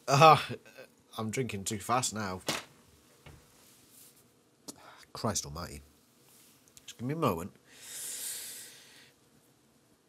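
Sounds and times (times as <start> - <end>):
man blowing out breath: 7.8 - 9.0.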